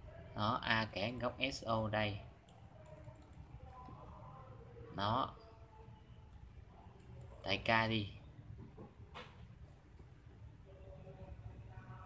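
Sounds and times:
computer mouse clicks: 0:02.5 - 0:03.4.

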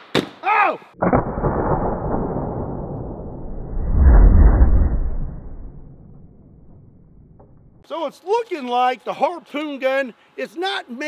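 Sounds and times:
slowed-down gunshot boom: 0:01.0 - 0:07.8.

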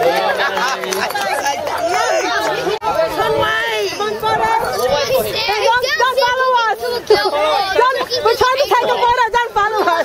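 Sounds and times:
excited crowd talking: 0:00.0 - 0:10.0.

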